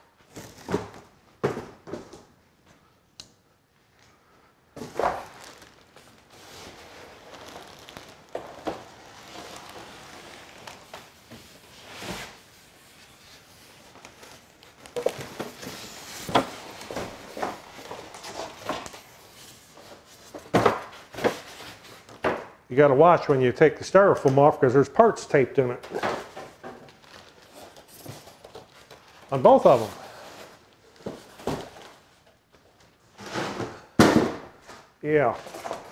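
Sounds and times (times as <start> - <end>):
plastic wrap and cardboard rustling: 0.1 - 2.1, 4.8 - 22.2, 25.8 - 35.9.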